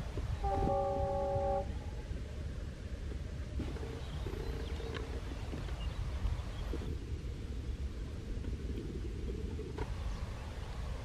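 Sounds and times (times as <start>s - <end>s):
train horn chord: 0.4s - 1.8s.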